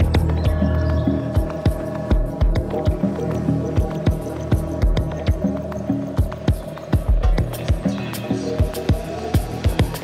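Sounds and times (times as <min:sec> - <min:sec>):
electronic dance music: 0:01.2 - 0:10.0.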